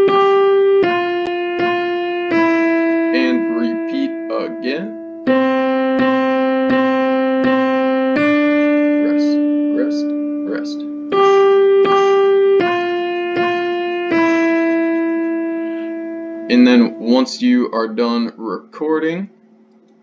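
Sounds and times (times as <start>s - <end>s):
piano melody: 0.0s - 18.5s.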